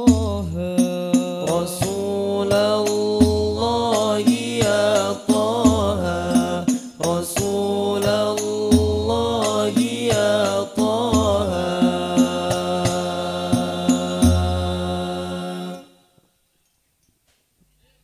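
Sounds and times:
frame drums beating: 0.0s - 15.3s
male voices singing devotional melody: 0.0s - 16.1s.

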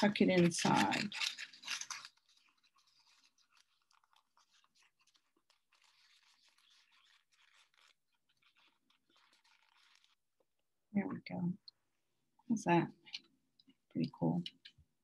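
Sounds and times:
paper crackling and rustling: 0.0s - 10.3s.

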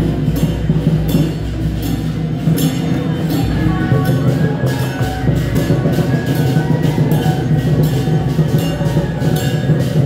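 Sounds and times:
cymbals or gongs striking: 0.0s - 10.0s
drums: 0.0s - 10.0s.

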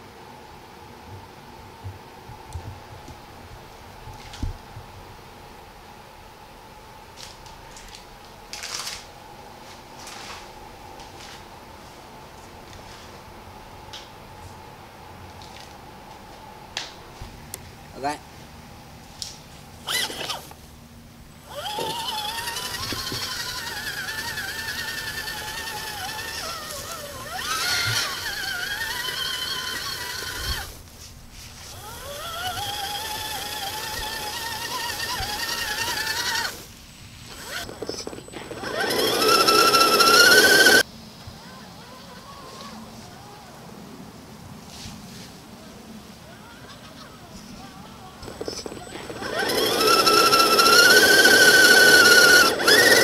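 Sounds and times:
electric motor and gear whine: 19.7s - 20.6s, 21.2s - 30.9s, 31.6s - 40.8s, 48.2s - 53.0s.

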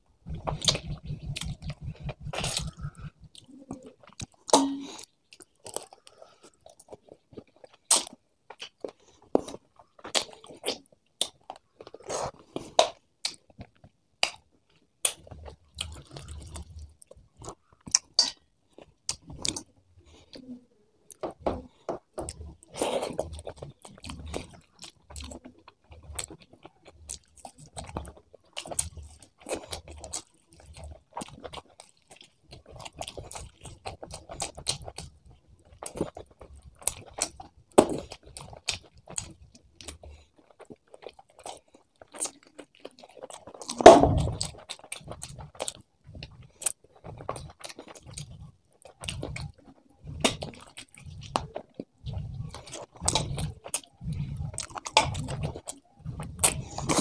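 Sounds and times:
close chewing and mouth sounds: 0.0s - 57.0s.

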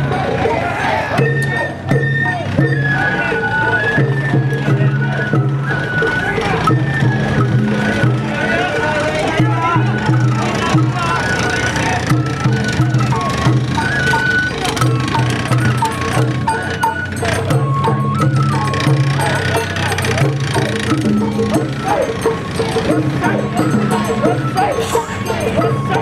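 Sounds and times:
men shouting: 0.0s - 5.3s, 5.9s - 17.8s, 18.4s - 26.0s
drums: 0.0s - 26.0s
high bamboo flute: 0.0s - 26.0s.

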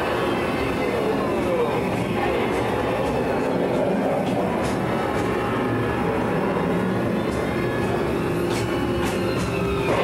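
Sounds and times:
train car rumbling on track: 0.0s - 10.0s.

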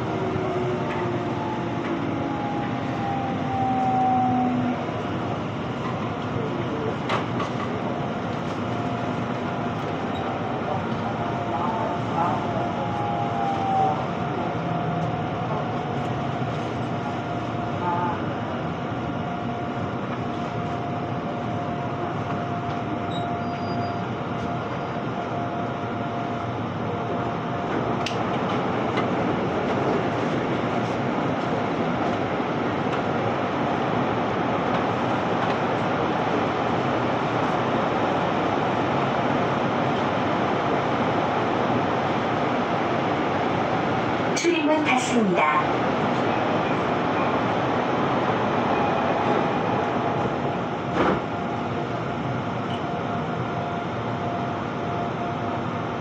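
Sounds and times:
train cabin noise: 0.0s - 56.0s.

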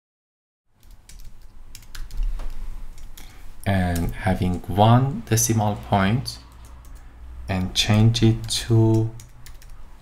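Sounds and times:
keyboard typing clicks: 0.8s - 3.3s, 6.5s - 7.0s, 7.6s - 9.8s.

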